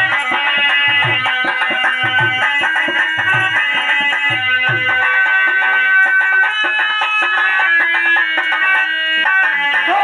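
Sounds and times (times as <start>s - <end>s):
drum beat: 0.0s - 10.0s
harmonium melody: 0.0s - 10.0s.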